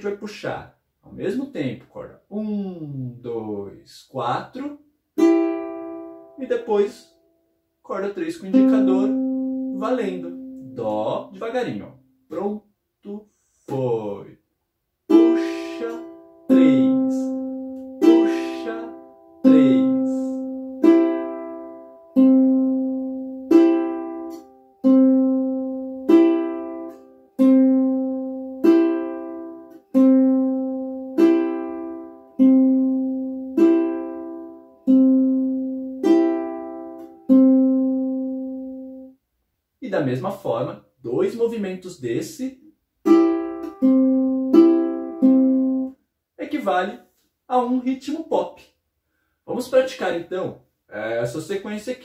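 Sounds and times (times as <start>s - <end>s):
ukulele fingerpicked slowly: 5.2s - 6.3s, 8.5s - 10.9s, 15.1s - 39.1s, 43.0s - 45.9s.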